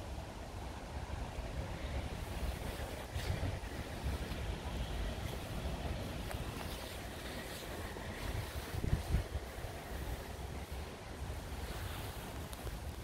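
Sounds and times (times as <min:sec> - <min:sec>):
rush of moving water: 0:00.0 - 0:13.0
wind rumbling on microphone: 0:00.0 - 0:13.0.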